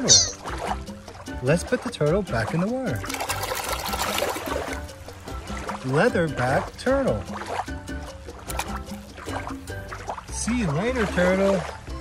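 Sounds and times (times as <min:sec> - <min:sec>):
toy splashing in shallow water: 0:00.0 - 0:11.9
background music with steady beat: 0:00.0 - 0:12.0.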